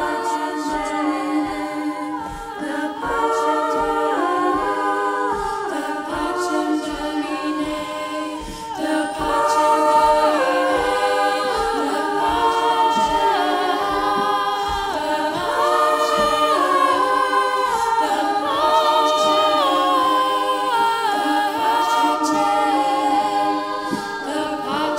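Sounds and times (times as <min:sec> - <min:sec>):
women's choir singing a cappella: 0:00.0 - 0:24.9.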